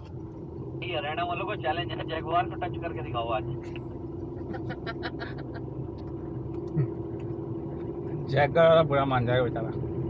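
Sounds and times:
car cabin engine and road noise: 0.0 - 10.0.

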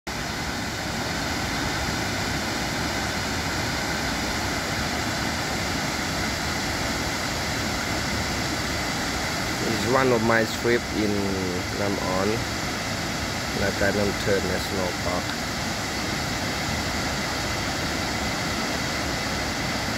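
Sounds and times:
waterfall rushing: 0.1 - 19.9.

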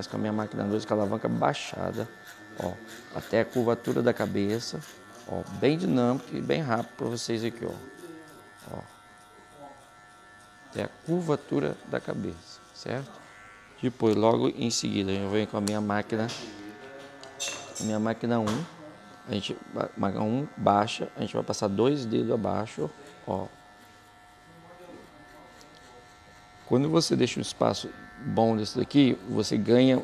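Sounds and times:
electric hair clipper buzzing: 0.0 - 30.0.

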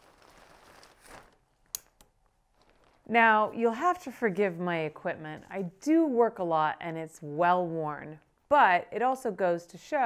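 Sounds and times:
umbrella fabric rustling: 0.0 - 1.6, 2.2 - 4.6.

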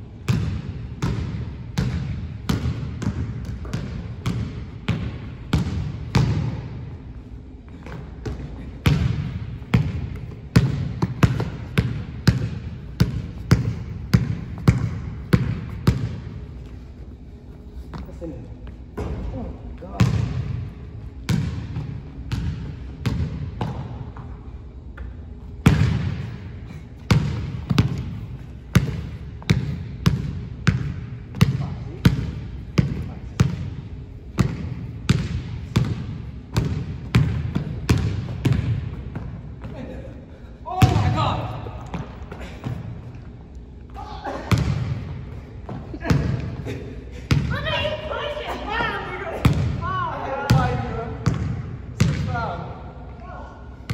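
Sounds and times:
basketball bouncing on gym floor: 0.2 - 6.9, 7.7 - 16.7, 19.0 - 24.4, 25.0 - 40.0, 40.7 - 43.3, 44.0 - 46.7, 47.3 - 48.1, 48.7 - 52.6
basketball bouncing on hardwood floor: 7.8 - 16.2, 27.1 - 33.7, 34.4 - 39.4, 44.5 - 45.0, 50.5 - 52.3.

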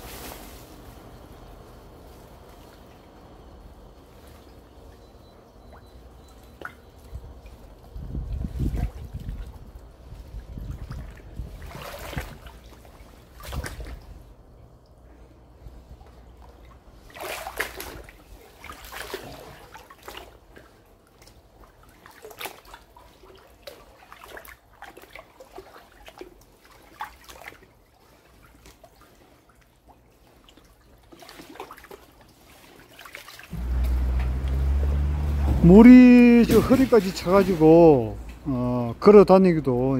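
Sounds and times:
water sloshing from wading: 0.0 - 39.6
loud low rumble: 33.5 - 38.5.

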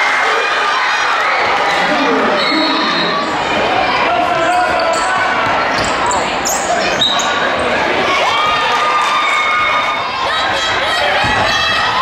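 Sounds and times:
crowd chatter and shouts: 0.0 - 12.0.

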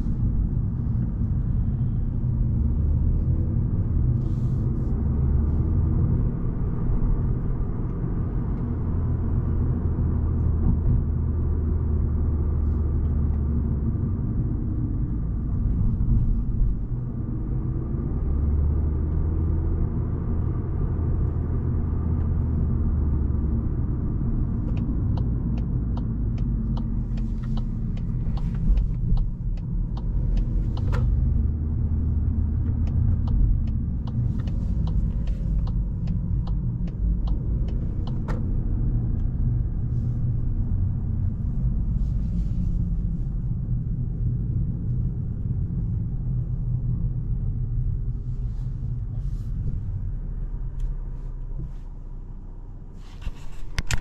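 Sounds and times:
car engine and tyres rumbling: 0.0 - 54.0
turn signal ticking: 6.0 - 41.9.

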